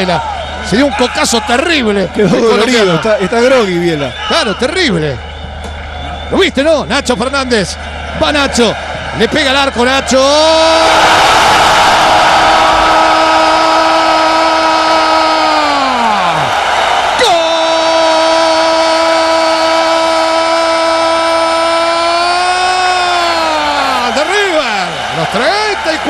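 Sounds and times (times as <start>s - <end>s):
stadium crowd cheering: 0.0s - 26.0s.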